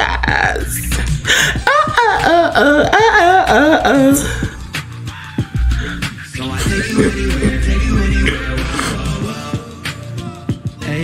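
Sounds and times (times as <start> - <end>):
pop music playing: 0.0 - 11.0
man's rough vocal outburst: 5.8 - 9.1.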